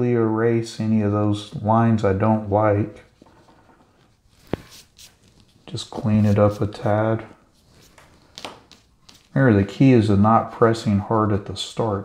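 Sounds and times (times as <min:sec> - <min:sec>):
eraser rubbing on paper: 0:04.4 - 0:07.0.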